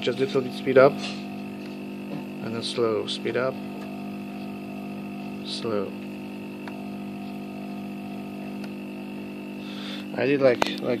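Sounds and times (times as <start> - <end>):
electric motor propeller hum: 0.0 - 11.0.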